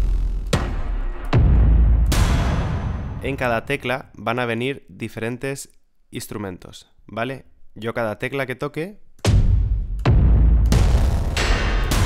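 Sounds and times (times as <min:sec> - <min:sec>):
cinematic impact hits with deep boom: 0:09.3 - 0:12.0.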